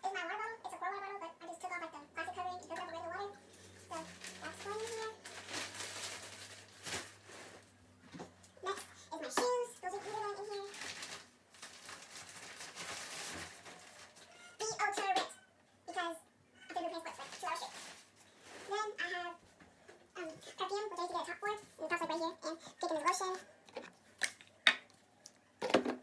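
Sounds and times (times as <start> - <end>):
girl talking: 0.0 - 5.3, 8.6 - 10.9, 14.6 - 17.9, 18.6 - 19.4, 20.1 - 23.4.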